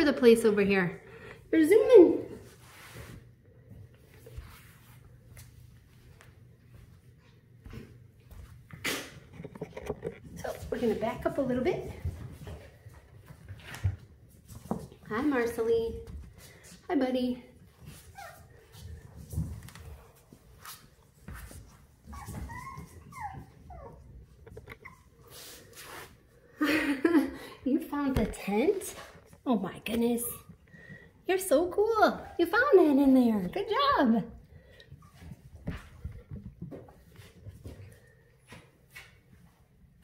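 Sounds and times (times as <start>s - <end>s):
puppy paws pattering on floor: 0.0s - 40.0s.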